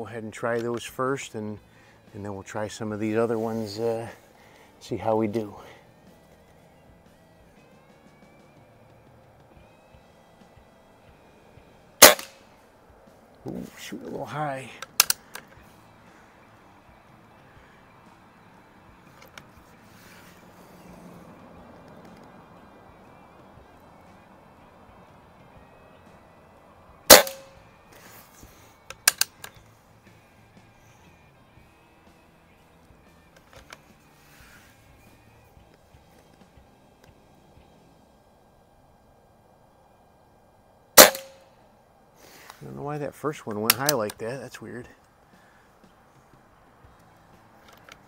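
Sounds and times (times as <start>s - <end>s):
air rifle shots: 12.0s - 12.4s, 27.1s - 27.5s, 41.0s - 41.4s
rifle bolt clicks: 12.0s - 12.4s, 14.8s - 15.5s, 27.1s - 27.5s, 28.9s - 29.6s.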